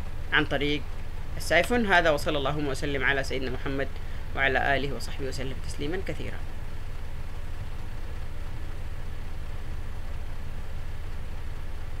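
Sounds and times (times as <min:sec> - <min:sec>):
low microphone hum and hiss: 0:00.0 - 0:12.0.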